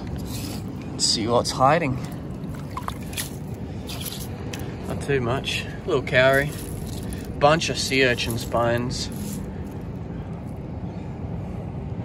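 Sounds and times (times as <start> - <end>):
hand scraping through shells: 0.0 - 0.7, 2.1 - 4.8, 6.1 - 9.9
low steady rumble: 0.0 - 12.0.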